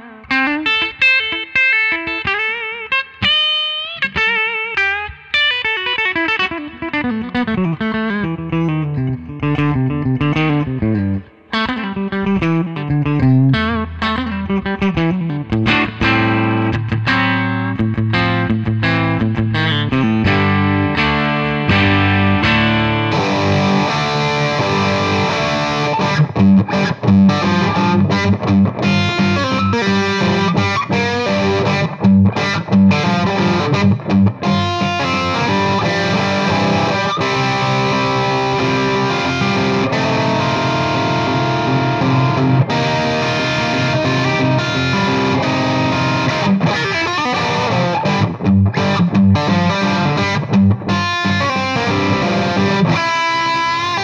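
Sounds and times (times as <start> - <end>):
distorted electric guitar rock: 0.0 - 54.0.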